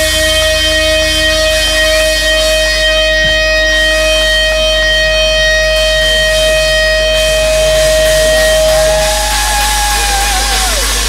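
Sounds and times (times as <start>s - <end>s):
electric guitar feedback note: 0.0s - 11.0s
guitar note bending: 0.0s - 11.0s
crowd cheering: 7.1s - 11.0s.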